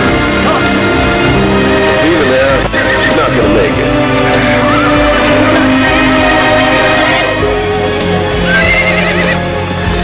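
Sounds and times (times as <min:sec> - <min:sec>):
pop song: 0:04.2 - 0:10.0
horse whinnying: 0:08.3 - 0:09.5.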